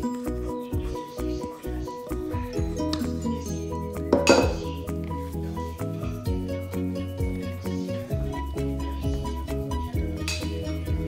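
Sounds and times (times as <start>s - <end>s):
background music: 0.0s - 11.0s
metal bowl clinking on plastic bowl: 4.1s - 4.7s.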